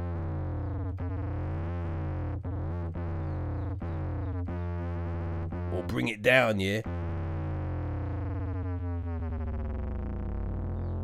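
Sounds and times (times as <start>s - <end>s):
dirty synth bass notes: 0.0s - 11.0s
steady low synth note: 0.0s - 11.0s.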